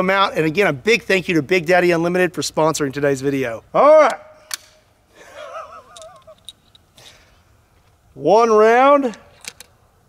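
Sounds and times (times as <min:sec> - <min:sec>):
rifle break action click: 0:04.5 - 0:04.8
man laughing softly: 0:05.1 - 0:06.4.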